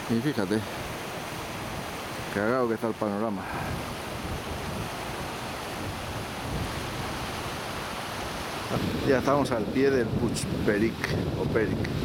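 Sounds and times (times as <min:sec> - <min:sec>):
wind on microphone: 0:00.0 - 0:02.4, 0:03.3 - 0:12.0.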